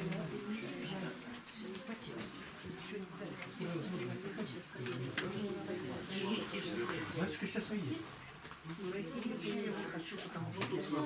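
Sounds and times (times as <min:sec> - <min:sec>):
voices murmuring: 0:00.0 - 0:11.0.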